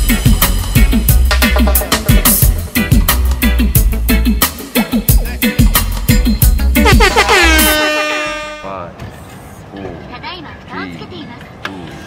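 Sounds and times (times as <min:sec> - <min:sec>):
dancehall riddim with drum beat: 0:00.0 - 0:08.1
air horn effect swooping up: 0:06.8 - 0:08.7.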